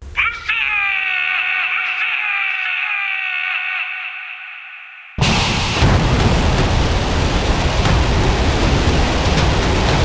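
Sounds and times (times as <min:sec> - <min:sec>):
man shouting into radio: 0:00.0 - 0:05.2.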